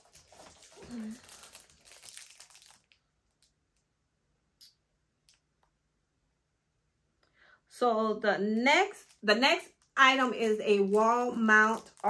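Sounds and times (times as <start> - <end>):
packaging crinkling: 0.0 - 3.6, 8.9 - 12.0.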